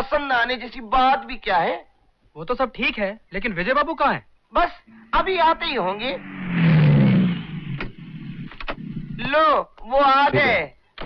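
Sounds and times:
car pulling up and stopping: 5.6 - 9.2.

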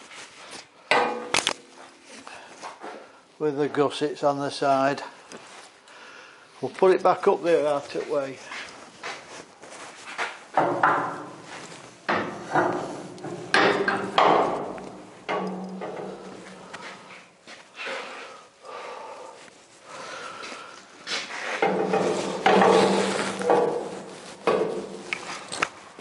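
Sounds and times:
metal clanks and knocks: 0.9 - 1.8, 10.5 - 17.1, 21.6 - 25.4.

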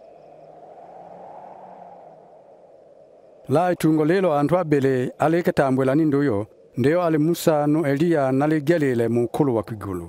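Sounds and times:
soft background hiss: 0.0 - 10.0.

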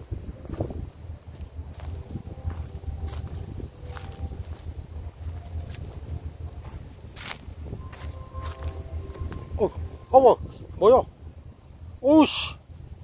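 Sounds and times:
wind buffeting microphone: 0.0 - 12.0
thin steady high tone: 0.0 - 13.0.

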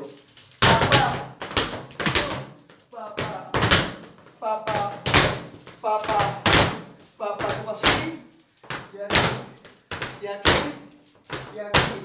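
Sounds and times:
dance shoes stamping on floor: 0.6 - 12.0.

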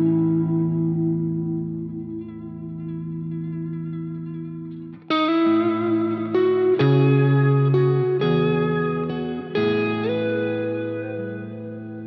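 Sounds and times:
electric guitar chords: 0.0 - 12.0.

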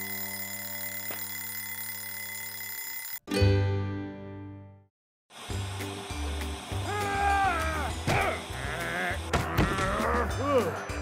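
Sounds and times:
upbeat cartoon music: 5.5 - 11.0.

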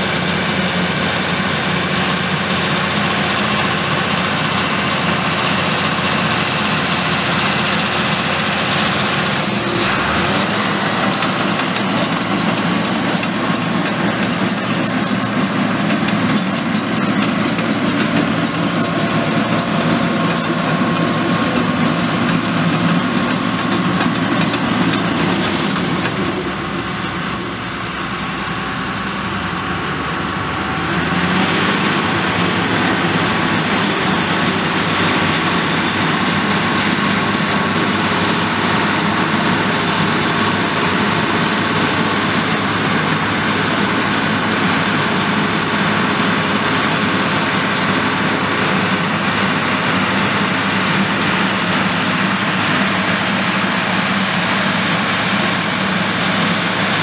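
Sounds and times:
bulldozer diesel engine running: 0.0 - 57.0
tracks and rock clicking rattle: 9.2 - 27.3.

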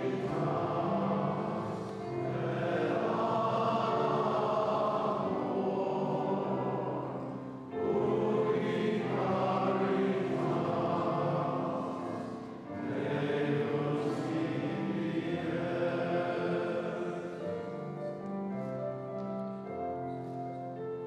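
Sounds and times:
choir singing a hymn: 0.0 - 21.0.

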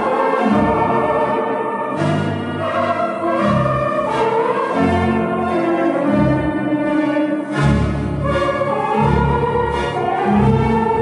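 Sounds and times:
pipe organ playing full chords: 0.0 - 11.0.

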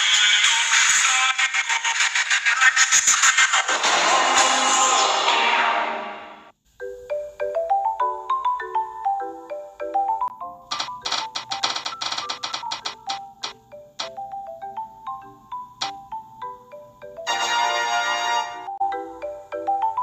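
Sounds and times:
loud intro music: 3.0 - 6.5
marimba-like tune: 6.8 - 20.0
spinning wheel ticking: 10.7 - 14.1.

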